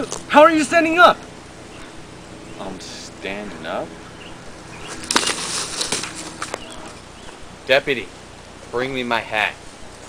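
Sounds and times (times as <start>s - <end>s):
twigs snapping: 4.8s - 7.4s
person falling onto dry leaves: 4.9s - 7.0s.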